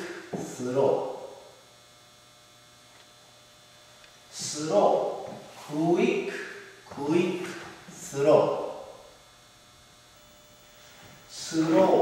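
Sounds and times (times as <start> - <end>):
faint electrical mains hum: 0.0 - 12.0
person speaking: 4.3 - 9.0, 11.3 - 12.0.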